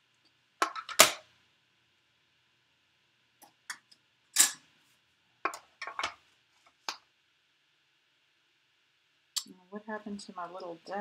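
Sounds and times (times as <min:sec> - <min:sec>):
plastic plates clicking and knocking: 0:00.6 - 0:01.2.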